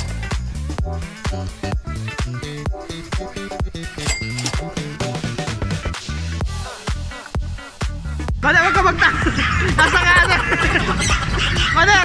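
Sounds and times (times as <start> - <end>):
background music with low beat: 0.0 - 12.0
voices: 8.4 - 12.0
woman's high-pitched laughter: 8.6 - 11.8.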